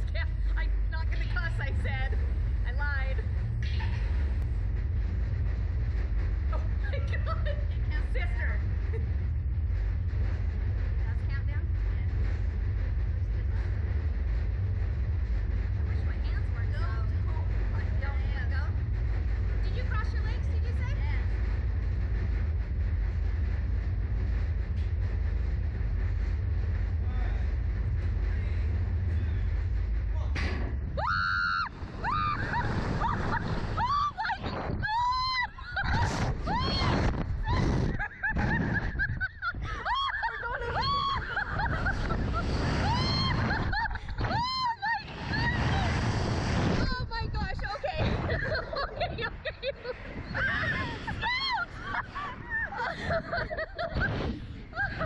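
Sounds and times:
steady low rumble: 0:00.0 - 0:55.0
riders screaming and laughing: 0:31.0 - 0:55.0.

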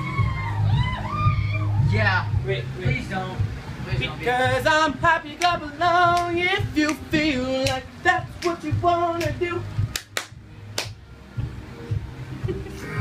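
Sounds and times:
person singing pop melody: 0:02.9 - 0:10.4, 0:11.9 - 0:13.0
sharp claps or snaps: 0:05.4 - 0:11.0.

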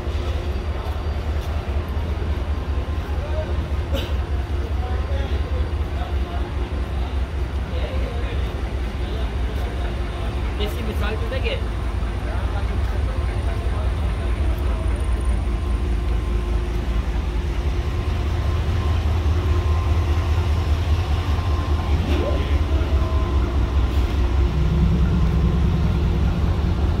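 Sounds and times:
locomotive engine idling: 0:00.0 - 0:27.0
higher hum: 0:13.2 - 0:27.0.

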